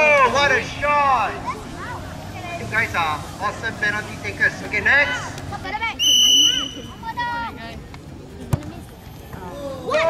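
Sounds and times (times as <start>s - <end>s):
whistle blown: 6.0s - 7.0s.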